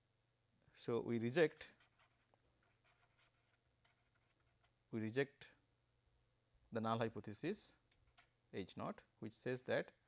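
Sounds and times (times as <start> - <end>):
pen scratching on paper: 1.7 - 4.7.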